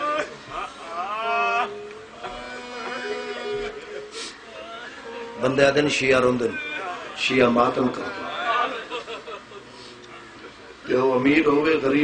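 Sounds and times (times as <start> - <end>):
man's lamenting cry over loudspeakers: 0.0 - 8.9.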